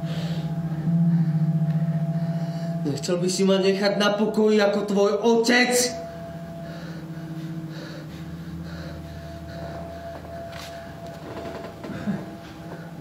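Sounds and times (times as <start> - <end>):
faint breaths: 0.0 - 2.9, 6.0 - 13.0
low droning chord: 0.0 - 13.0.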